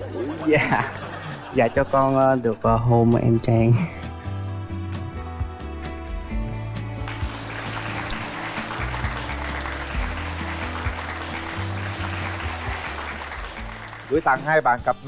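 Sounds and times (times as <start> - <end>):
background music with bass line: 0.0 - 15.0
studio audience applause: 7.0 - 14.8.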